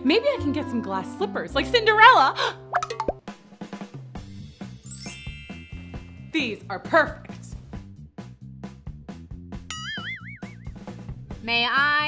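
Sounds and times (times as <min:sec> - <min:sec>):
cartoon boing sound effect: 0:09.7 - 0:10.6.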